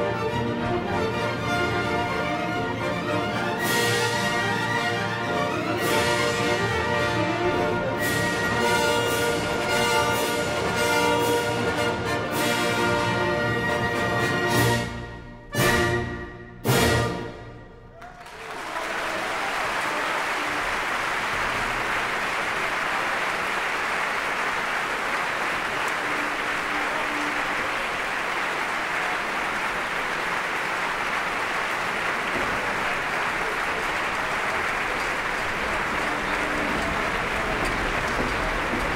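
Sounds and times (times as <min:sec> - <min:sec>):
audience applauding: 0:17.9 - 0:38.9.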